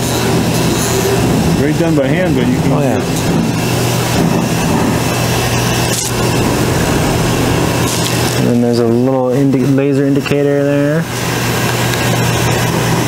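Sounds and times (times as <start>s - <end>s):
laser cutting machine humming: 0.0s - 9.4s.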